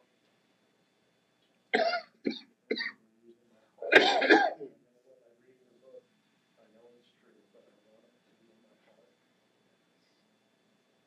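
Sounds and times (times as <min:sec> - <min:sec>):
person coughing: 0:01.8 - 0:03.0, 0:03.8 - 0:04.7.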